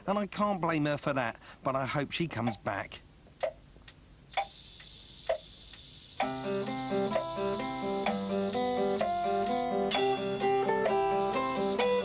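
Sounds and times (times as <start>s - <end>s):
clock-like ticks: 2.4s - 2.6s, 3.4s - 9.6s
music with plucked guitar: 6.2s - 12.0s.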